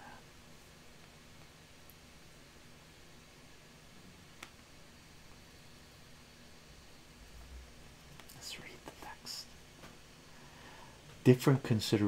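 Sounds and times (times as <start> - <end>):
man whispering: 8.3 - 9.6.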